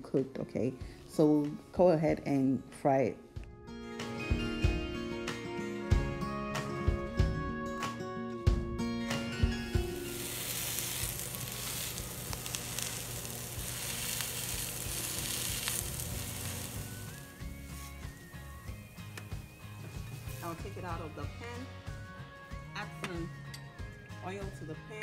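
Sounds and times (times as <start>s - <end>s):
background music: 0.0s - 25.0s
fritters sizzling in oil: 9.8s - 20.4s.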